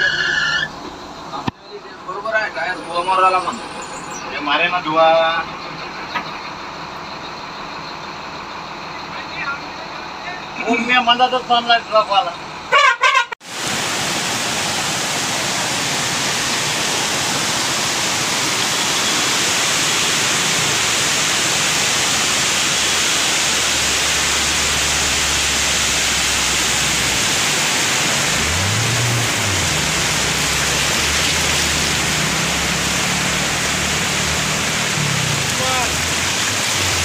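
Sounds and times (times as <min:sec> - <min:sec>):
floodwater rushing: 0:13.4 - 0:37.0
rain falling: 0:13.4 - 0:37.0.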